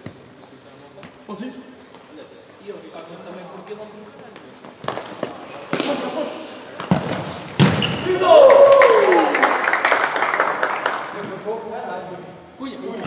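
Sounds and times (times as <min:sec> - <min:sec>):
ball struck on hard court: 0:06.8 - 0:08.1
players shouting and cheering: 0:07.9 - 0:09.7.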